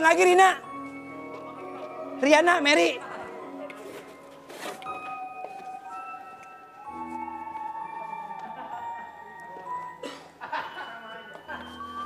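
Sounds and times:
sustained music notes: 0.4s - 12.0s.

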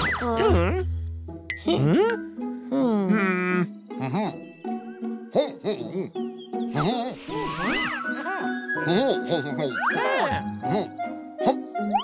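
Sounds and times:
light cartoon music: 0.0s - 12.0s
cartoon character voice sounds: 9.7s - 10.8s.

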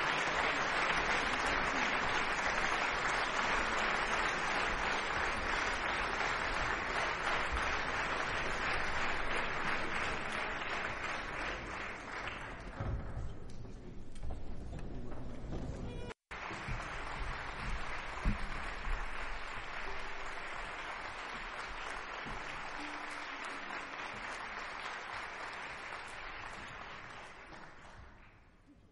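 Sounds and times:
audience applauding: 0.0s - 13.0s, 16.3s - 28.6s.

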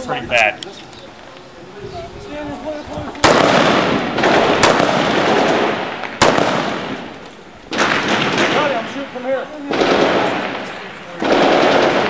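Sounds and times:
gunfire cracks and rattle: 3.2s - 9.0s, 9.7s - 12.0s.

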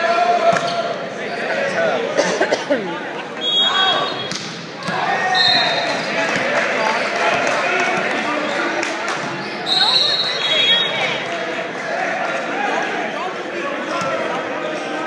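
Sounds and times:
people chattering in echoing gym: 0.0s - 15.0s.

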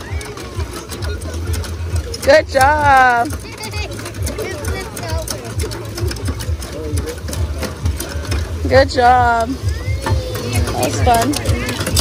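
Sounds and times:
crowd chatter: 0.0s - 12.0s
pump handles clacking: 0.0s - 12.0s.

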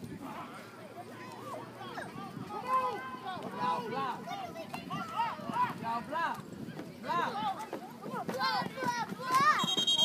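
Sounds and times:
referee's whistle: 9.6s - 10.0s.

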